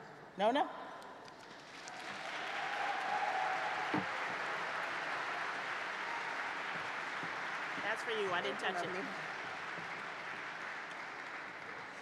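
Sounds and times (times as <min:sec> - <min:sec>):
audience applauding: 0:01.4 - 0:12.0.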